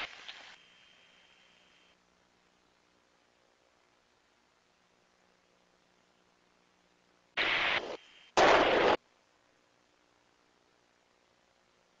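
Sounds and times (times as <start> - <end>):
static hiss bursts: 0.0 - 2.0, 6.4 - 12.0.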